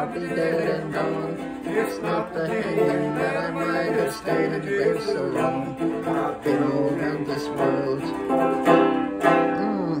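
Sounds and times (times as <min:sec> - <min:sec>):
banjo strummed in chords: 0:00.0 - 0:10.0.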